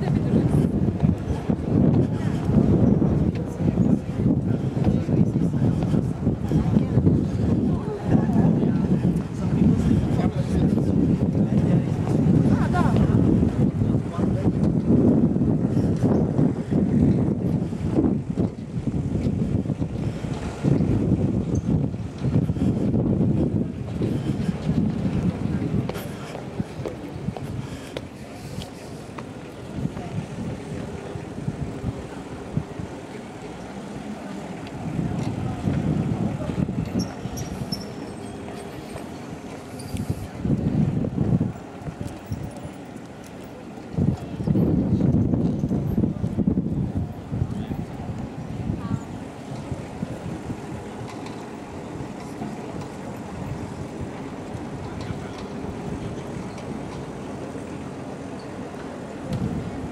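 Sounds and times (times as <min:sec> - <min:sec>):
passers-by talking: 0:00.0 - 0:59.9
wind buffeting microphone: 0:00.0 - 0:59.9.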